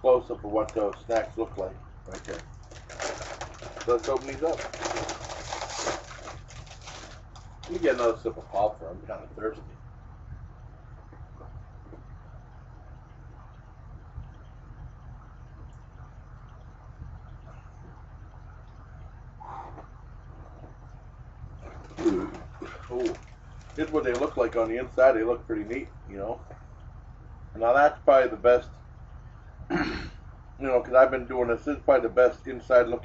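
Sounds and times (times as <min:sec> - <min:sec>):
plastic bag crinkling: 0:02.1 - 0:08.2, 0:21.9 - 0:24.7.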